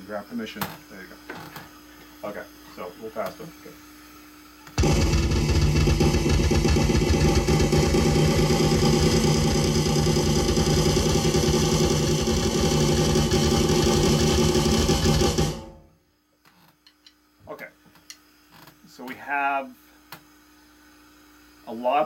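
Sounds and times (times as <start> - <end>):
fast electronic drum roll: 4.8 - 15.9.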